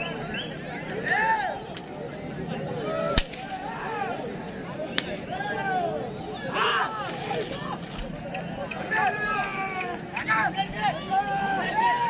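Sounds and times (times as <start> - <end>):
whip crack: 3.2 - 3.4.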